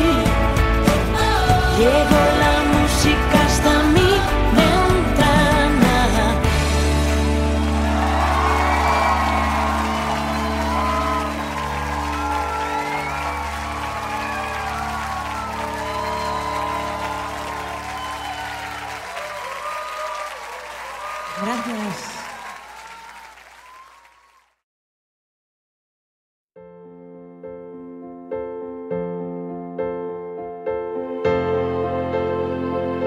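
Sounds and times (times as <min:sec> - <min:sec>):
pop-rock band held chord: 0:00.0 - 0:18.6
crowd cheering and applause: 0:06.4 - 0:24.6.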